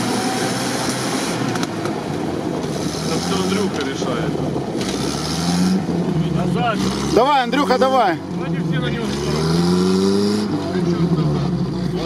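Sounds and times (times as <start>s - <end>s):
vehicle engine revving under load: 0.0s - 12.0s.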